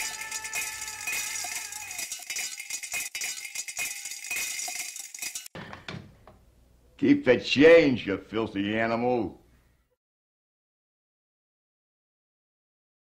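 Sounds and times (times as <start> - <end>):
metal coins clinking: 0.0 - 5.5.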